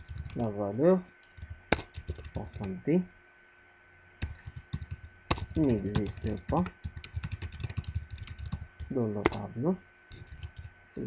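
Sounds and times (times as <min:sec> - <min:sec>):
keyboard key clicks: 0:01.2 - 0:02.4, 0:04.2 - 0:09.4.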